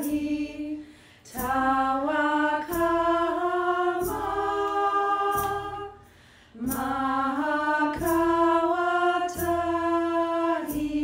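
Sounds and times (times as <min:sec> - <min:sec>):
a cappella singing: 0:00.0 - 0:11.0.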